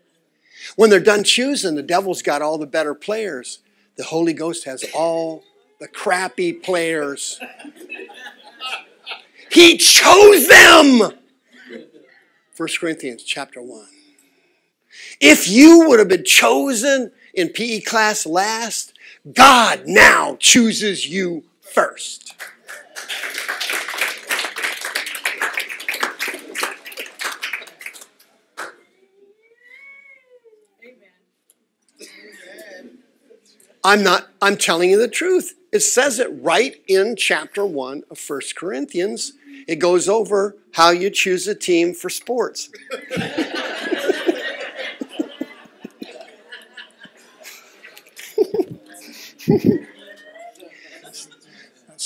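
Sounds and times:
short laugh: 8.5 - 9.4, 48.2 - 49.9
audience applauding: 22.3 - 28.8.

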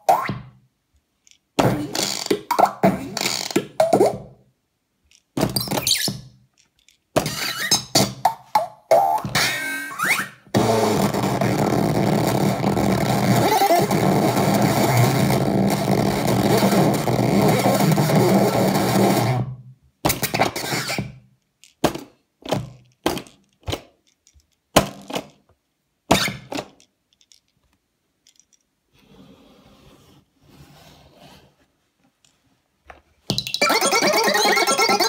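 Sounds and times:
distorted electronic noise: 10.6 - 19.4.

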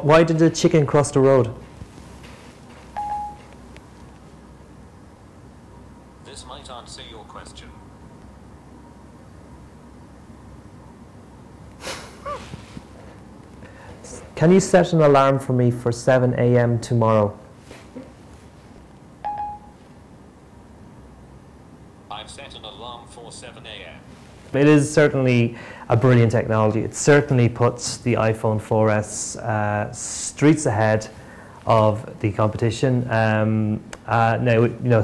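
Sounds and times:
short electronic beep: 3.0 - 3.5, 19.3 - 19.7.

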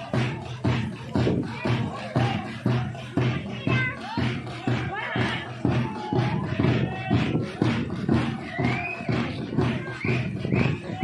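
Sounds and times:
crowd noise: 0.0 - 11.0
drums beating quick rhythm: 0.0 - 11.0
high-pitched calls or whistles: 8.5 - 9.3, 9.9 - 11.0.

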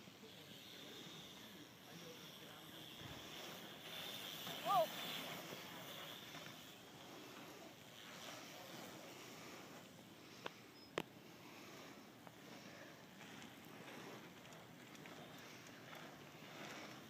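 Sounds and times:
bikes rolling on dirt track: 0.0 - 17.0.

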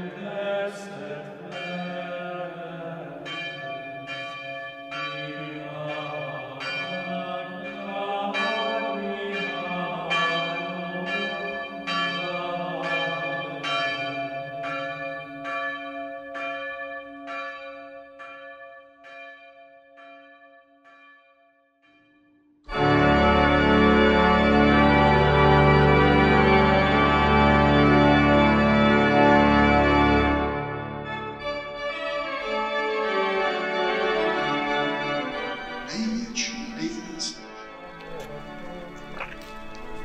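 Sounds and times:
church bells ringing: 0.0 - 40.0.

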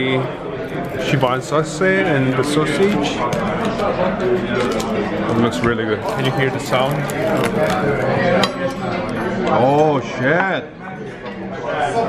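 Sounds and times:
crunching of crisp pork skin: 6.0 - 8.2.

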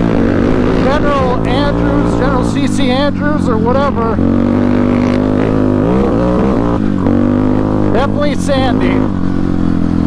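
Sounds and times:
motorcycle engine accelerating: 0.0 - 10.0.

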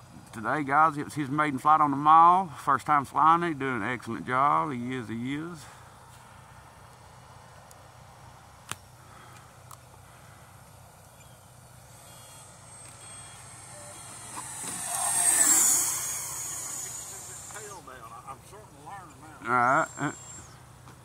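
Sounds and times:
model jet fan whine: 3.2 - 21.0.

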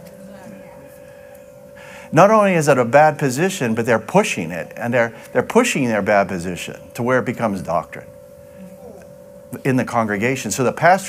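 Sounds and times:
thin steady hum: 0.0 - 11.0
person breathing in: 1.8 - 2.1.

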